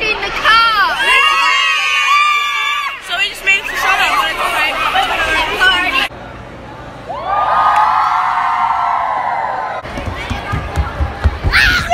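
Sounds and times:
girls shouting and talking: 0.0s - 6.1s, 10.1s - 11.9s
group cheering: 0.9s - 3.1s, 7.1s - 9.9s.

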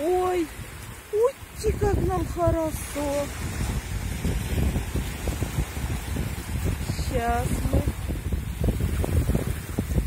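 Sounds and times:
small waves breaking gently: 0.0s - 10.0s
wind buffeting microphone: 0.0s - 10.0s.

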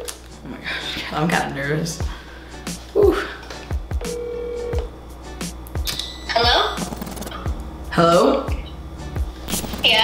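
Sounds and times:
background music: 0.0s - 10.0s
phone ringback beep: 4.0s - 4.9s, 6.0s - 6.5s.

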